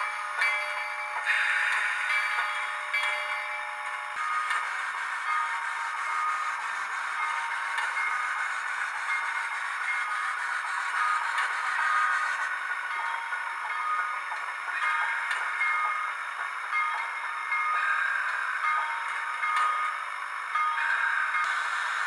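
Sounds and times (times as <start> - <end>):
model steam locomotive sound: 0.0 - 22.0
steam bursts: 1.2 - 22.0.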